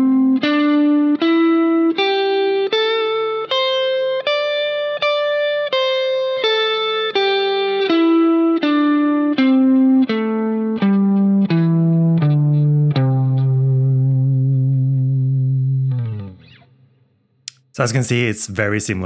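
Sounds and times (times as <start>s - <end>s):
electric guitar picking notes: 0.0s - 16.8s.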